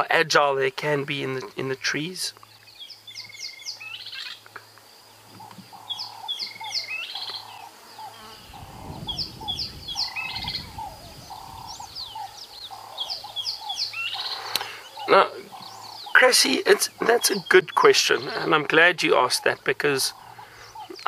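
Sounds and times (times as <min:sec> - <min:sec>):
birds chirping: 0:00.0 - 0:21.0
low repeated bird note: 0:05.4 - 0:18.7.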